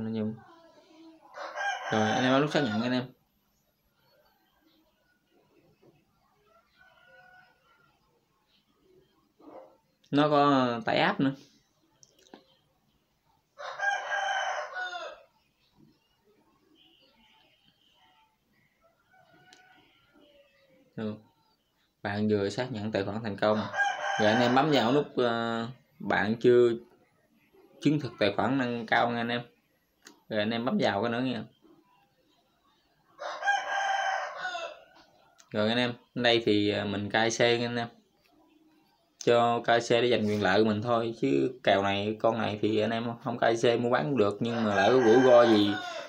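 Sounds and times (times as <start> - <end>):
rooster crowing: 1.3 - 3.1, 6.4 - 7.9, 13.6 - 15.4, 18.8 - 20.8, 23.4 - 25.6, 33.2 - 35.2, 43.9 - 46.0.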